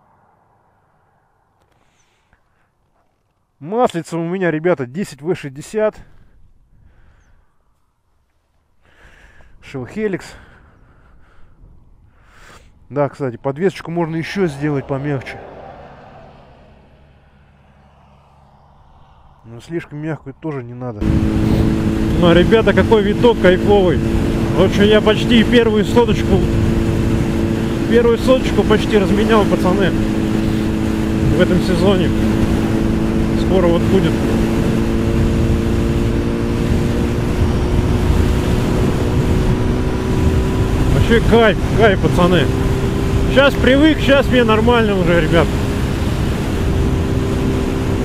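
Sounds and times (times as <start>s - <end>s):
wind rush on microphone: 10.7s - 12.9s, 14.4s - 48.0s
motorcycle engine cruising: 13.6s - 19.6s, 21.0s - 48.0s.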